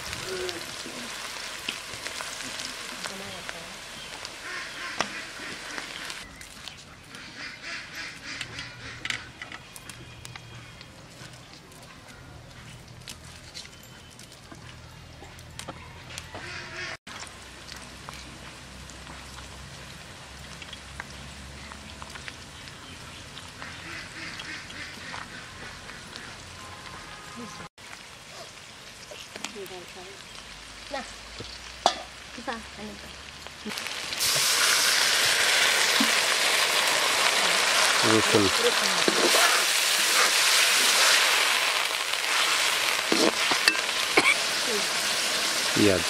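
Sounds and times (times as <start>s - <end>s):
ducks quacking: 4.4s - 6.2s, 7.1s - 9.4s, 16.4s - 17.0s, 23.6s - 26.5s.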